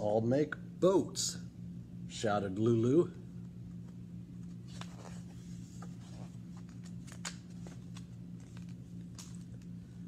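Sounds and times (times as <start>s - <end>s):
steady low hum: 0.0s - 10.0s
paper page rustling: 4.4s - 9.7s.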